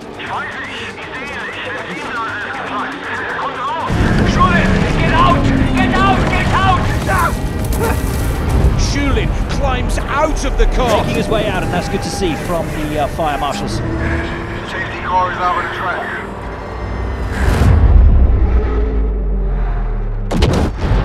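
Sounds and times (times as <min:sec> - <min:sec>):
voices: 0:00.0 - 0:08.1, 0:08.7 - 0:16.7
film music: 0:00.0 - 0:21.0
loud explosion boom: 0:03.9 - 0:11.8
fire blazing: 0:03.9 - 0:14.2.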